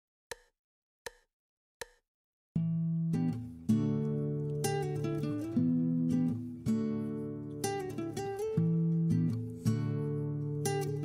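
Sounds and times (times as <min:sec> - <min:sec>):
hollow percussive ticks: 0:00.3 - 0:00.5, 0:01.1 - 0:02.0.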